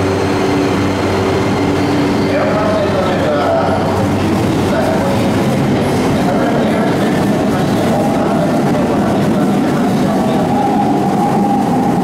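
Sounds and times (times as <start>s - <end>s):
train wheels rumbling on rail: 0.0s - 12.0s.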